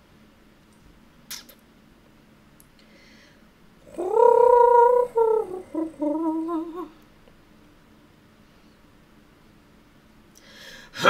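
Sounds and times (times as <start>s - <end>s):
sharp click: 1.3s - 1.6s
wordless vocal call: 3.8s - 7.0s.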